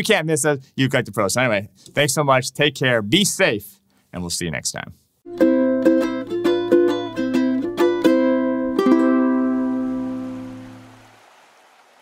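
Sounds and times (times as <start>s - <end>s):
ukulele chords strummed: 5.3s - 10.8s.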